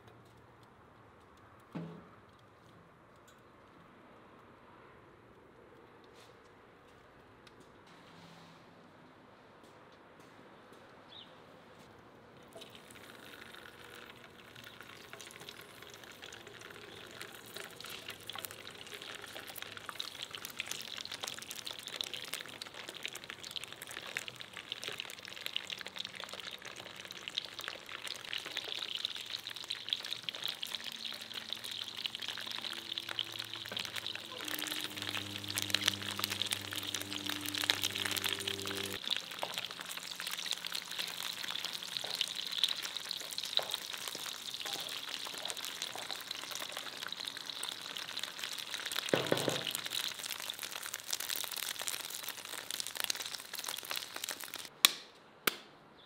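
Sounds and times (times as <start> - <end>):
sausages sizzling in hot oil: 12.6 - 54.7.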